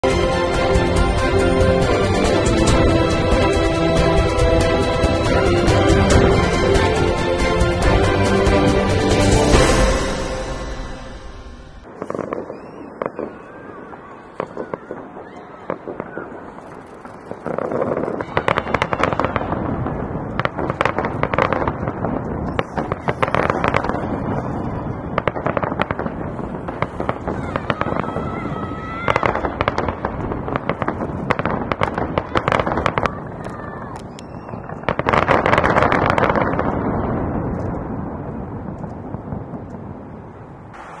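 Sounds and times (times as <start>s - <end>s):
fireworks banging and crackling: 0.0s - 41.0s.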